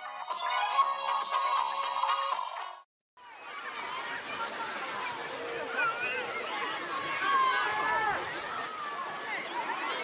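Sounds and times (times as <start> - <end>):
murmur of overlapping voices: 3.2 - 10.0.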